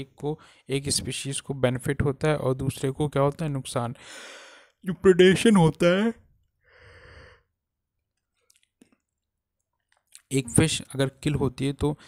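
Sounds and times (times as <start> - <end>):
person speaking: 4.8 - 6.3, 10.1 - 12.0.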